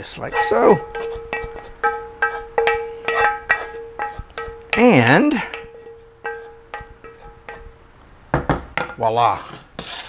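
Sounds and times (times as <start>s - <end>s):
utensil scraping metal pan: 0.0s - 7.8s, 8.8s - 10.0s
pan ringing: 0.0s - 8.0s.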